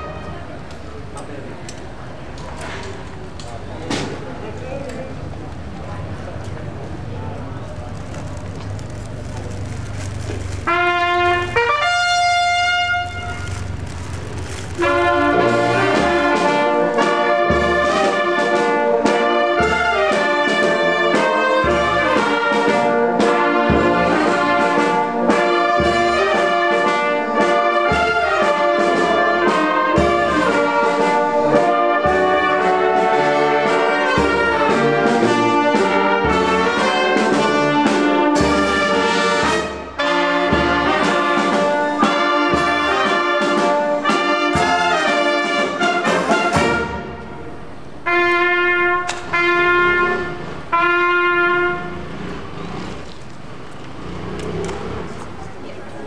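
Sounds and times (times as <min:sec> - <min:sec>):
brass band playing: 0:00.0 - 0:00.7, 0:10.5 - 0:52.8
held brass notes: 0:00.0 - 0:00.8, 0:10.2 - 0:52.8
low background murmur: 0:00.0 - 0:56.0.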